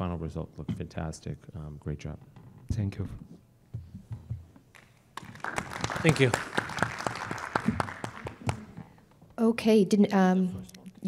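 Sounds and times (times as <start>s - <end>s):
audience applause: 5.2s - 9.0s.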